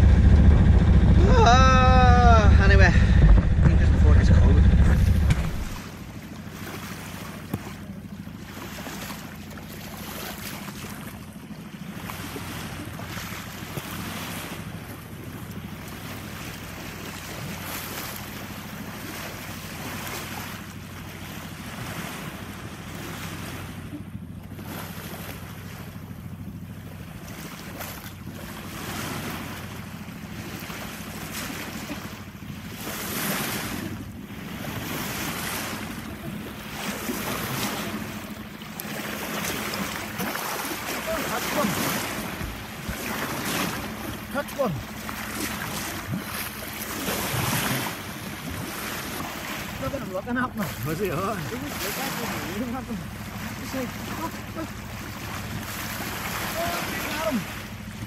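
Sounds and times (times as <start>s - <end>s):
wind buffeting microphone: 0.0s - 5.9s
steady low hum: 0.0s - 6.6s
water rushing along boat hull: 0.0s - 58.0s.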